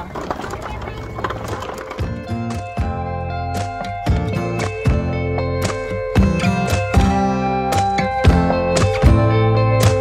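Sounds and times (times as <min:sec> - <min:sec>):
shopping cart rattling on pavement: 0:00.0 - 0:02.9.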